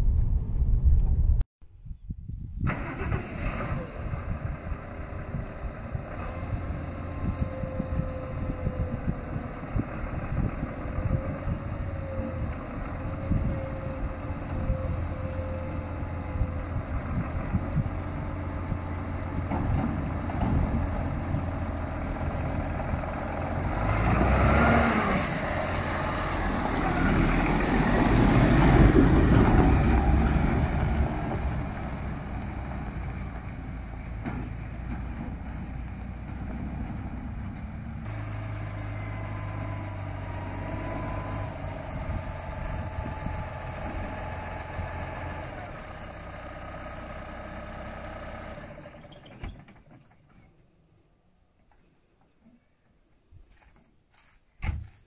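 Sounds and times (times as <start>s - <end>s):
tractor diesel engine running: 2.6s - 50.6s.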